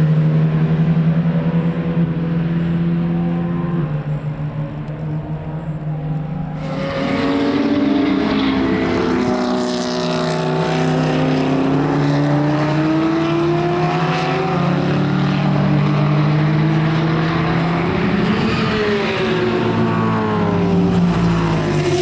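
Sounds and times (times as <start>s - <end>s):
race car engine running: 0.0s - 22.0s.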